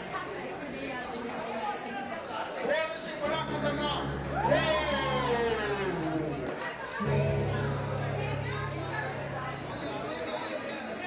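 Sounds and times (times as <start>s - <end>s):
crowd chatter in hall: 0.0s - 11.0s.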